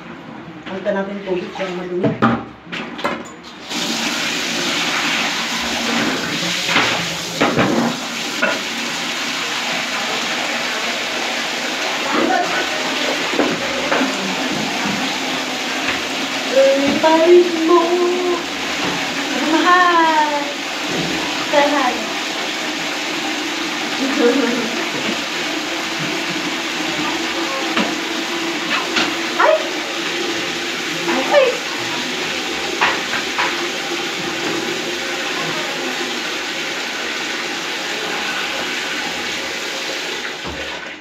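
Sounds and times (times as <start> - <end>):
tap water running: 0.6 - 41.0.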